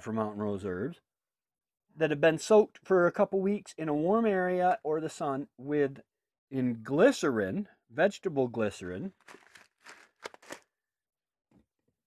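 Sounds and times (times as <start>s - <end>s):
objects being handled rustling: 9.1s - 10.6s.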